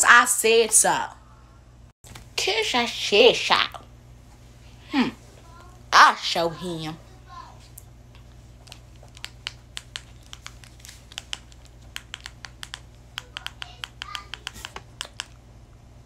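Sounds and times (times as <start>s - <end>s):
faint low hum: 0.0s - 16.0s.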